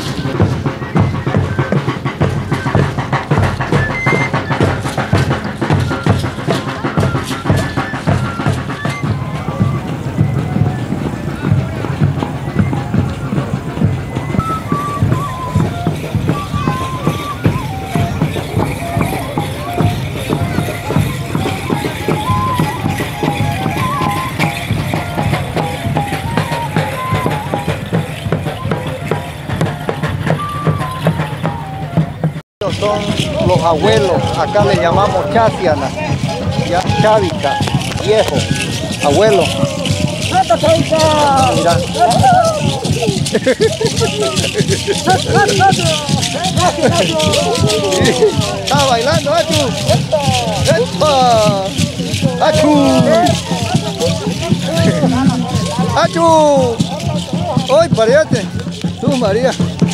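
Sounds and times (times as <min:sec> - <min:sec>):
crowd voices: 0:00.0 - 0:59.9
drums beaten in steady rhythm: 0:00.0 - 0:59.9
high wandering melody: 0:00.0 - 0:59.9.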